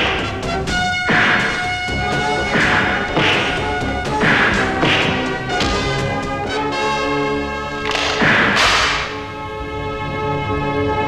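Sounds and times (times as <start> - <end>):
background music: 0.0 - 11.0
punch hits: 4.2 - 6.0, 7.9 - 9.2.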